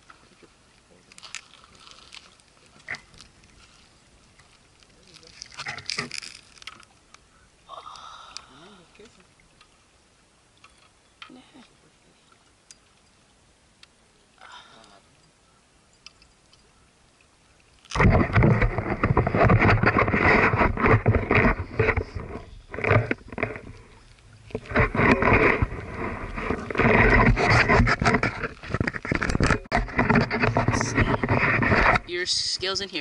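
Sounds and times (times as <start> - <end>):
camera handling scraping: 17.9 - 32.1.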